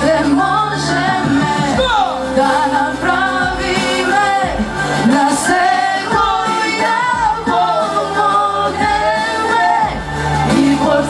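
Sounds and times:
backing track with low beat: 0.0s - 11.0s
person singing: 0.0s - 11.0s.

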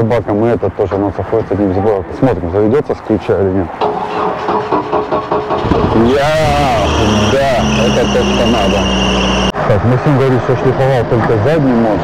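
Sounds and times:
van engine starting and idling: 3.8s - 9.5s.

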